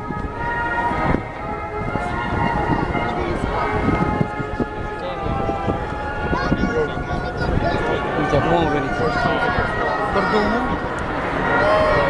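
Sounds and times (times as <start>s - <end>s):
aircraft engines droning overhead: 0.0s - 12.0s
wind on microphone: 0.0s - 12.0s.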